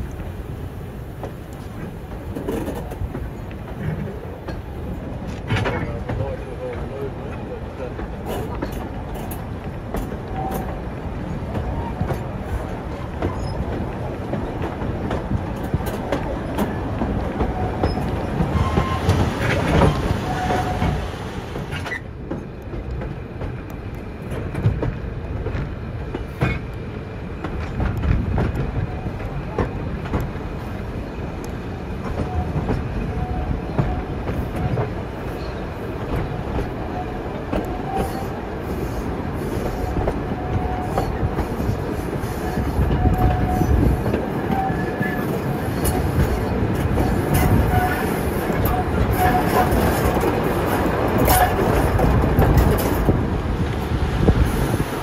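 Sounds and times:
train rumble: 0:00.0 - 0:55.0
wheels clattering over rail joints: 0:01.1 - 0:26.8, 0:31.4 - 0:55.0
wheel flanges squealing: 0:17.4 - 0:21.1, 0:40.3 - 0:51.9.

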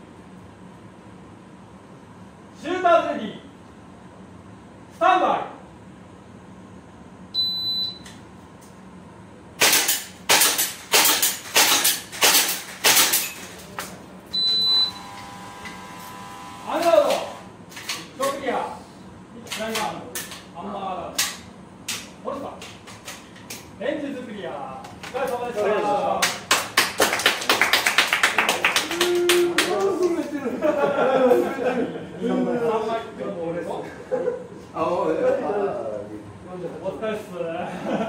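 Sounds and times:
shot timer beep: 0:07.4 - 0:08.1, 0:14.3 - 0:15.2
airsoft pistol shots: 0:09.6 - 0:13.4
hits on metal plate targets: 0:09.6 - 0:13.4.

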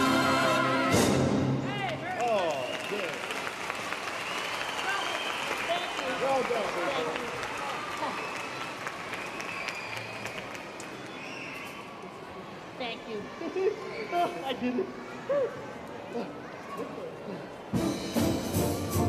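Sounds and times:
audience applauding and cheering: 0:01.7 - 0:12.1.

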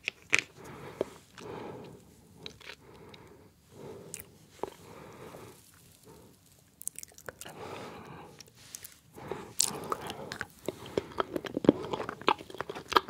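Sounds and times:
mouth clicks and smacks eating: 0:00.0 - 0:01.5, 0:09.6 - 0:13.0.

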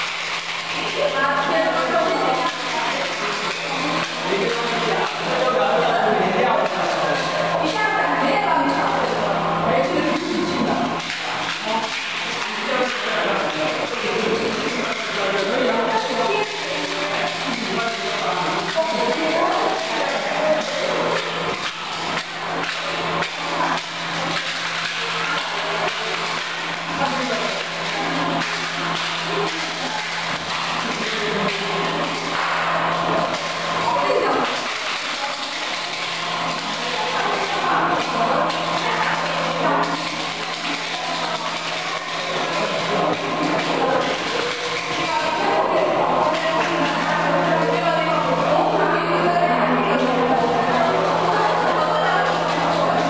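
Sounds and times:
printer humming: 0:00.0 - 0:53.0.

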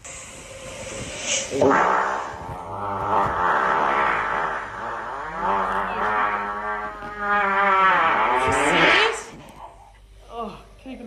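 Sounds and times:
long pitched farts: 0:01.0 - 0:09.6.

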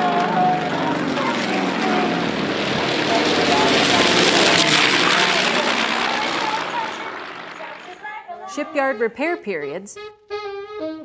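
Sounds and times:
propeller plane flying past: 0:00.0 - 0:08.3
faint voices: 0:00.0 - 0:09.3.

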